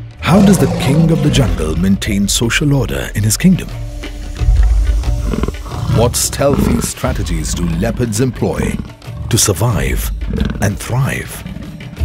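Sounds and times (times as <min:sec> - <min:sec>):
background music: 0:00.0 - 0:12.0
lion roaring: 0:00.2 - 0:01.8, 0:04.6 - 0:12.0.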